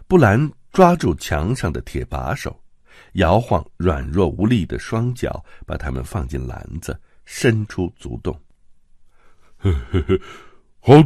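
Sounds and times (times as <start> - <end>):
man speaking: 0.0 - 2.6, 3.2 - 8.4
man laughing breathily: 9.5 - 10.6.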